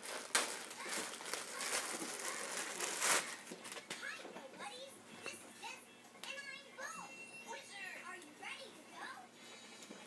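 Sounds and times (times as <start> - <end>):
faint children's voices: 0.6 - 9.6.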